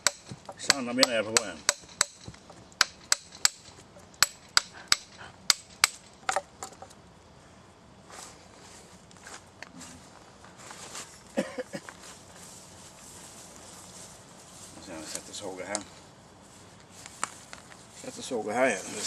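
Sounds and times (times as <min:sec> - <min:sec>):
hatchet chopping wood: 0:00.0 - 0:06.5
faint rustling: 0:08.1 - 0:19.0.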